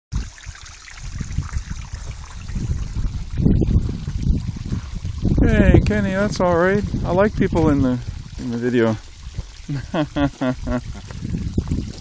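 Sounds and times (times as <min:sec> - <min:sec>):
liquid trickling off plastic film: 0:00.1 - 0:12.0.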